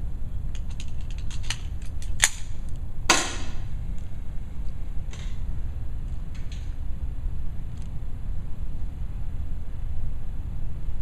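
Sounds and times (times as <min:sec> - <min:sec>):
air pistol shot: 0:03.1 - 0:03.7.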